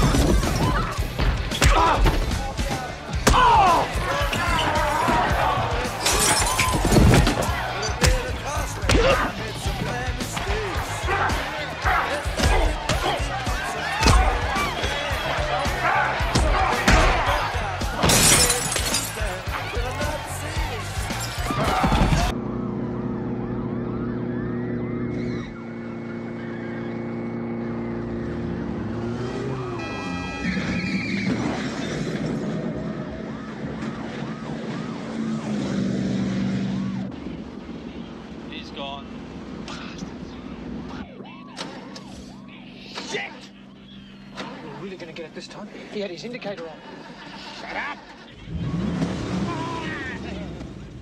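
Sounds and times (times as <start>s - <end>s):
music: 0.0s - 22.4s
glass shattering: 6.0s - 8.2s, 18.0s - 19.4s, 21.1s - 21.9s
car engines running: 19.0s - 41.1s, 48.2s - 51.0s
siren rising and falling: 22.3s - 31.7s, 40.9s - 44.4s.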